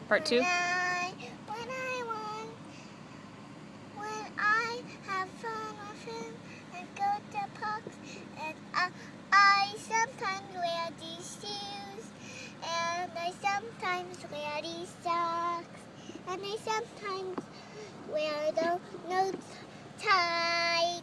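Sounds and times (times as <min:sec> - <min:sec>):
girl singing: 0:00.4 - 0:02.6, 0:04.0 - 0:21.0.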